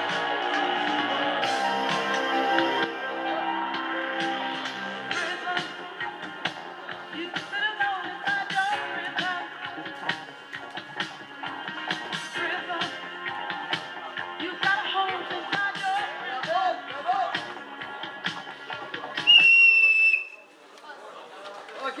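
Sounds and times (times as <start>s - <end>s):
music with steady beat: 0.0s - 20.0s
loud whistle blast: 19.2s - 20.5s.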